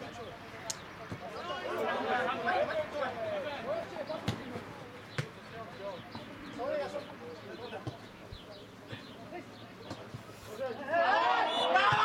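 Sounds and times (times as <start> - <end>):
players calling: 0.0 - 12.0.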